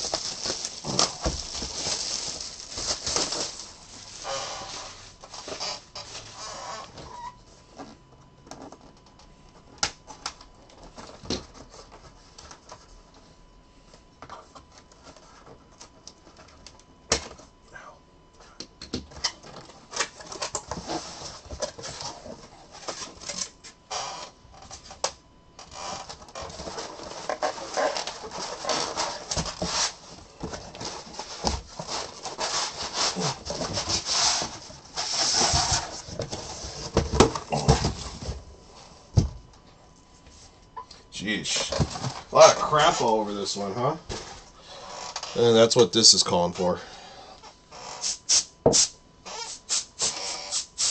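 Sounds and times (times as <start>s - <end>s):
cardboard rubbing and tearing: 0.0s - 6.9s, 25.8s - 37.9s.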